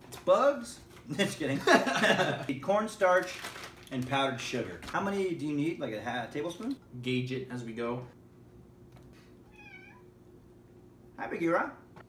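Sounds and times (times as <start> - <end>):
cat meowing faintly: 9.4 - 10.1.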